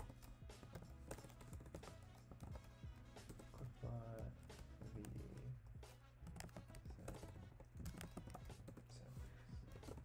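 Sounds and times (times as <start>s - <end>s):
computer keyboard typing: 0.0s - 10.0s.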